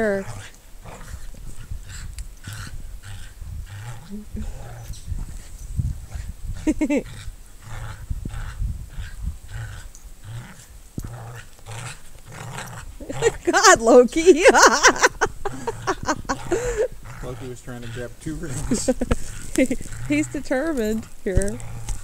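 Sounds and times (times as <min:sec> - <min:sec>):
dogs growling in play: 0:00.0 - 0:22.0.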